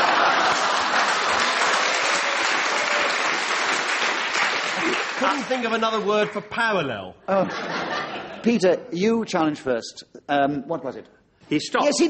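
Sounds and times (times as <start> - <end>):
audience laughing: 0.0 - 1.8, 7.3 - 8.5
audience applauding: 0.0 - 6.5.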